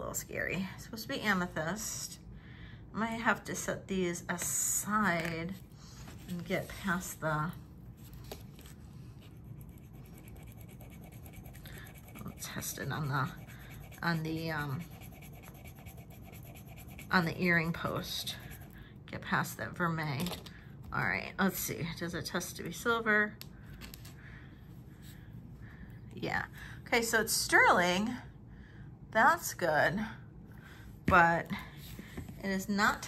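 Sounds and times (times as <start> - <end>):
low steady hum: 0.0 - 33.0
faint scratching on metal earring: 9.2 - 18.8.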